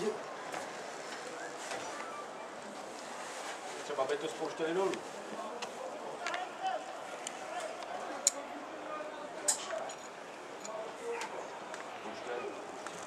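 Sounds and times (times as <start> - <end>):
murmur of voices: 0.0 - 13.0.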